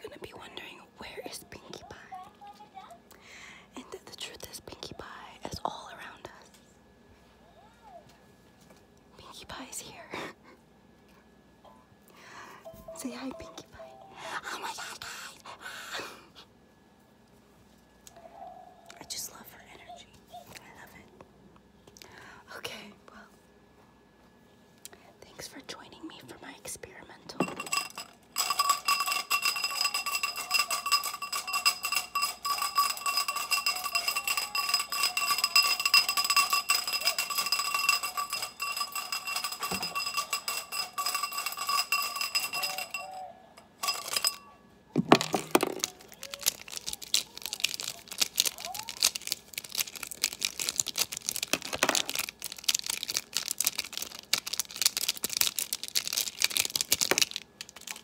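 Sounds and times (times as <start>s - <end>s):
markers rattling in a plastic cup: 27.4s - 43.2s, 45.1s - 58.0s
markers clicking and rubbing together: 45.8s - 58.0s.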